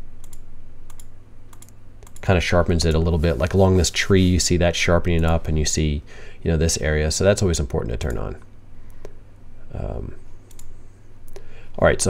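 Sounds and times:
low steady hum: 0.0 - 12.0
computer mouse clicking: 0.2 - 2.3, 10.5 - 10.7.

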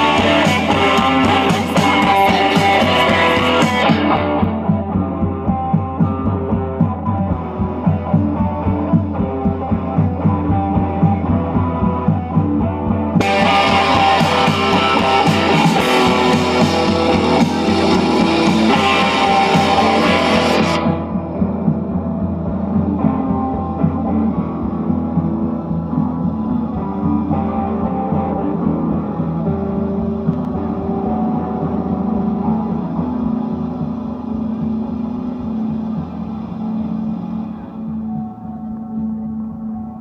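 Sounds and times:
drums and cymbals: 0.0 - 39.8
electric guitars: 0.0 - 40.0.

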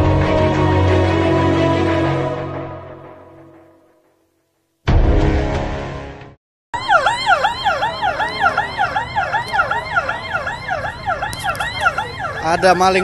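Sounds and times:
dramatic music hit: 4.9 - 6.4
siren on fast yelp: 6.8 - 13.0.

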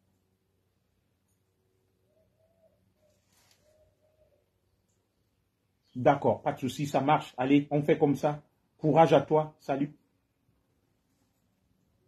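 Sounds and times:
dove cooing: 2.1 - 4.6
brief rustle: 3.0 - 3.8.

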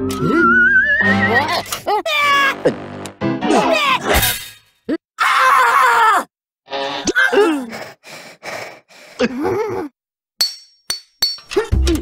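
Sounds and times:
music: 0.0 - 1.7, 2.3 - 3.8, 11.5 - 12.0.

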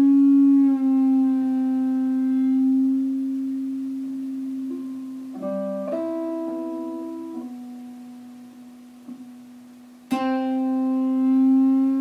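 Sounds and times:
electric guitar note ringing: 0.0 - 12.0.

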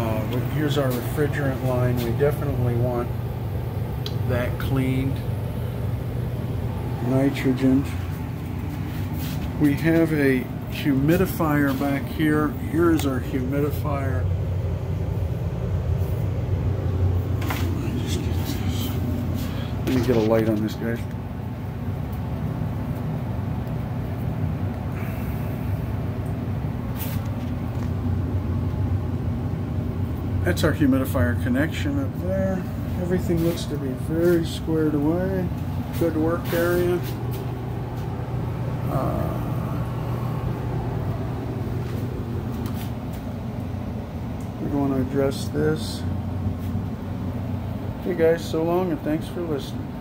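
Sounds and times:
low machine hum: 0.0 - 50.0.

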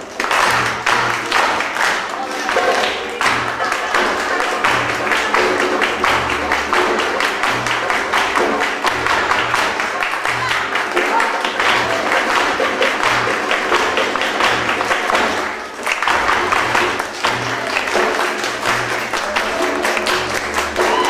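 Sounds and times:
group hand clapping: 0.0 - 21.0
flamenco guitar: 0.1 - 21.0
deep frame drum beating: 3.1 - 15.4.

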